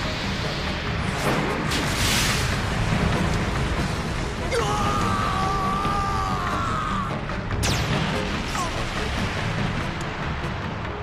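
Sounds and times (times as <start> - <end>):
explosion blast and rumble: 0.0 - 5.2.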